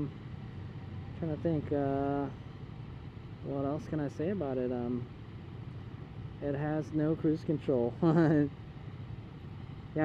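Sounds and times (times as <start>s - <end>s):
person laughing: 8.0s - 8.5s.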